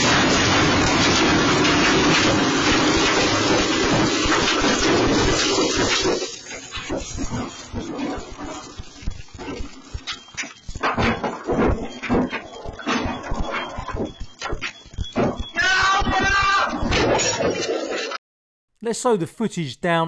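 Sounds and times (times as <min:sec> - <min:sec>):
rushing venting flame: 0:00.0 - 0:17.9
crackles and pops: 0:00.0 - 0:18.2.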